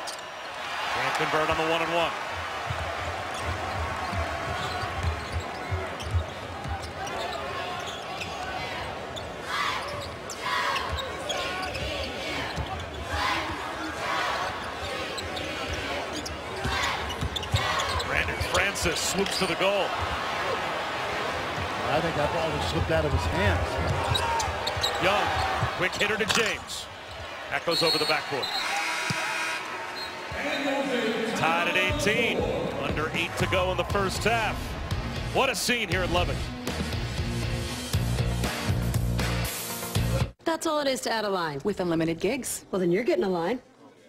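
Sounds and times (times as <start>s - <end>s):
arena crowd voices: 0.0s - 36.4s
basketball dribbling on court: 2.6s - 7.2s.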